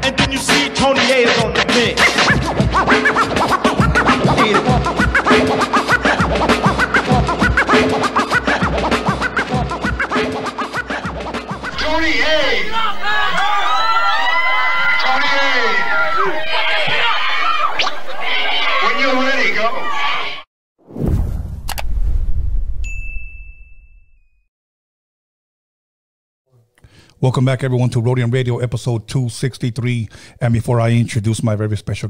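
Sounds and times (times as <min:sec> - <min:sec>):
hip hop beat: 0:00.0 - 0:13.6
turntable record scratches: 0:00.5 - 0:12.0, 0:16.7 - 0:18.9
low rumble: 0:20.9 - 0:23.4
bell-like notification ding: 0:22.8 - 0:24.3.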